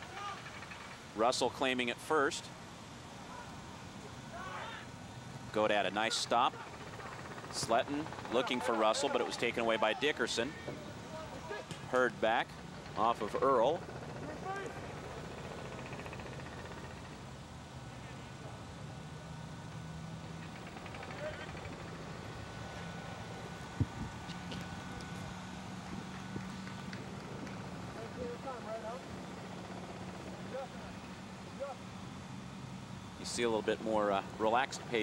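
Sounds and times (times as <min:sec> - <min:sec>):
distant shouts of players: 0:03.3 - 0:03.6, 0:04.2 - 0:05.0.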